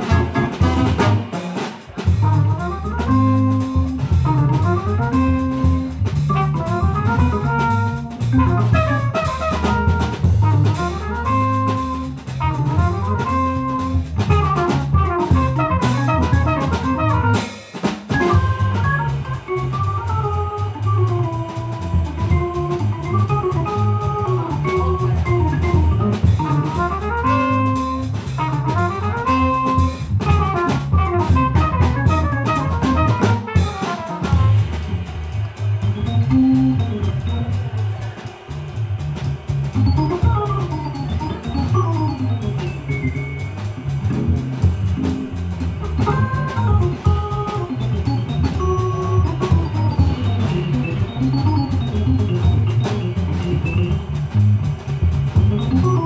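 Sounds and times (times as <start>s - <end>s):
jazz band playing: 0.0s - 56.0s
organ melody: 0.0s - 56.0s.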